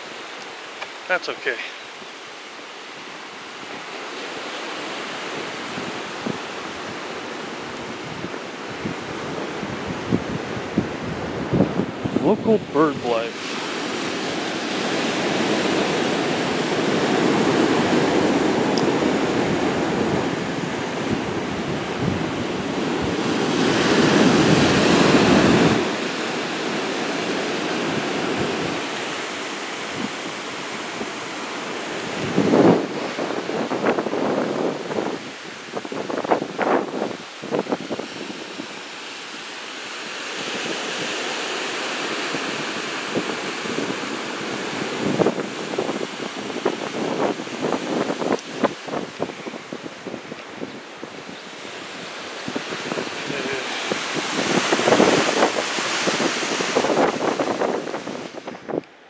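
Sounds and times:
ocean surf washing onto beach: 0:00.0 - 0:59.0
wind rushing over microphone: 0:02.8 - 0:59.0.

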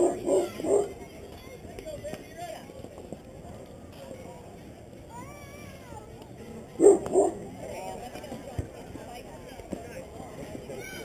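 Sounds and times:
dog barking: 0:00.0 - 0:01.0, 0:06.8 - 0:07.4.

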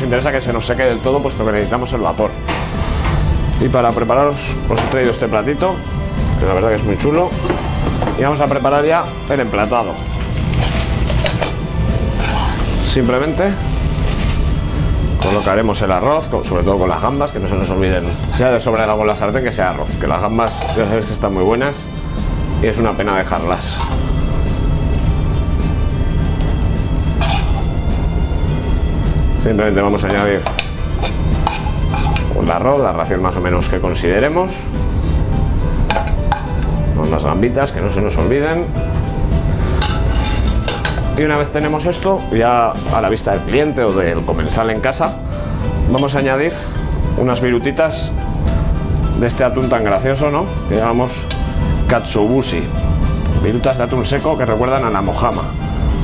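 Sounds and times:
background music with low bass: 0:00.0 - 0:56.0
frying pan and spoon clinking: 0:10.2 - 0:12.7, 0:15.2 - 0:15.6, 0:27.2 - 0:27.7, 0:30.1 - 0:32.4, 0:35.9 - 0:36.7, 0:39.8 - 0:41.1
metal spoon clinking glass plate: 0:39.8 - 0:41.0.

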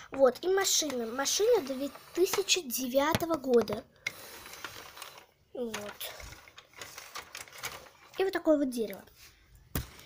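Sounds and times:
plastic toy clicks and taps: 0:02.2 - 0:04.2.

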